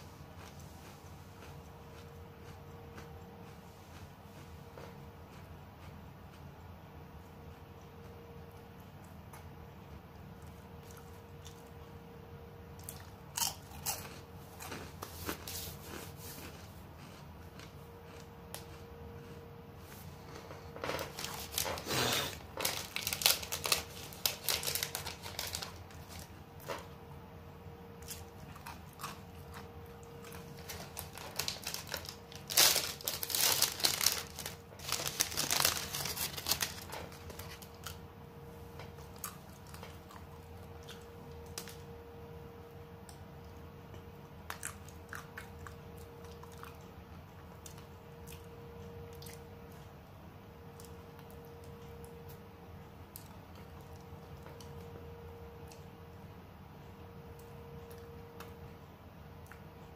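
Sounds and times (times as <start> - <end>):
ice cream wrapper crinkling: 20.9 - 26.9, 30.3 - 38.0
small clicks of eating: 43.0 - 50.0, 50.7 - 52.4, 53.0 - 55.0, 55.6 - 56.0, 57.3 - 58.6, 59.4 - 59.9.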